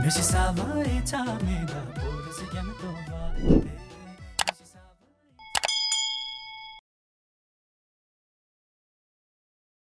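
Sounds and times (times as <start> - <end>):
bright bell ding: 5.4 - 6.8.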